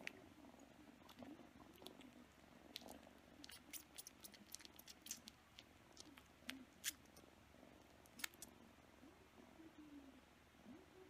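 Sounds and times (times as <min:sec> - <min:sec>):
kitten wet sucking clicks: 0:02.7 - 0:07.2, 0:08.0 - 0:08.5.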